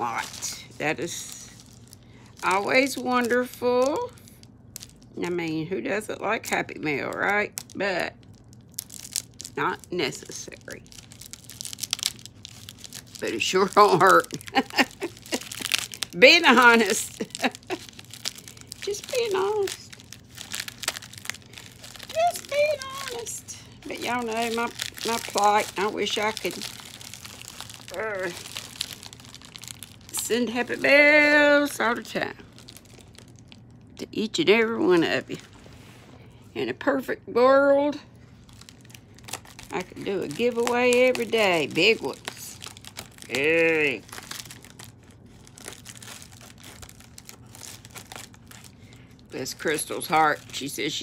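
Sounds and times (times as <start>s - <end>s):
packaging crinkling: 0.0s - 5.3s, 6.4s - 34.0s, 38.2s - 51.0s.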